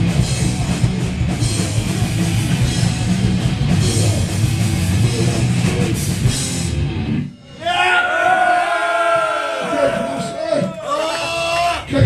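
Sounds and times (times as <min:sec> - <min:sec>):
punk band playing loud: 0:00.0 - 0:07.9.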